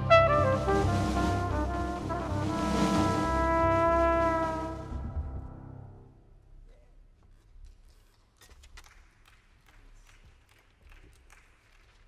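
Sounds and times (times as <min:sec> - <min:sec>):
flugelhorn long note: 0:00.0 - 0:05.6
jazz band playing: 0:00.0 - 0:05.9.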